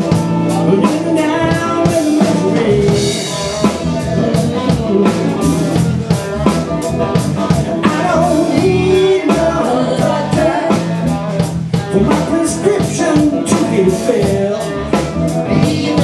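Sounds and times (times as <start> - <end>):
drum kit beat: 0.0 - 16.0
electric guitar: 0.0 - 16.0
person singing: 0.0 - 16.0.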